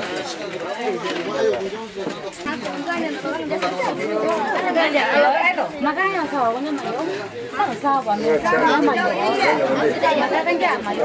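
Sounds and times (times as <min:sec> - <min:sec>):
chatter of overlapping voices: 0:00.0 - 0:11.0.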